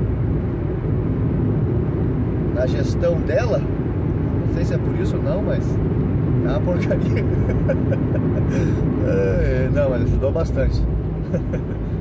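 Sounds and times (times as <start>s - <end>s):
road and engine rumble in car cabin: 0.0s - 12.0s.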